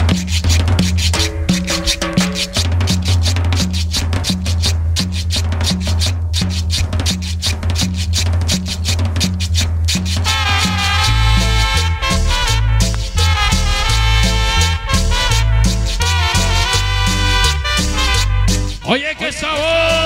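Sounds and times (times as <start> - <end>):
bass line: 0.0 - 20.0
scraped guiro and shakers: 0.0 - 20.0
horn section: 10.2 - 20.0.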